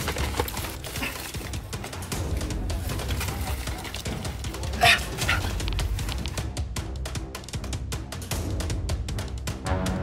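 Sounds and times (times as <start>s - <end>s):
action music with low pulse: 0.0s - 10.0s.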